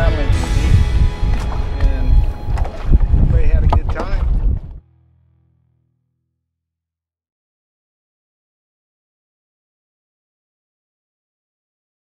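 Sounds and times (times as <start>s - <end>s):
wind buffeting microphone: 0.0s - 4.8s.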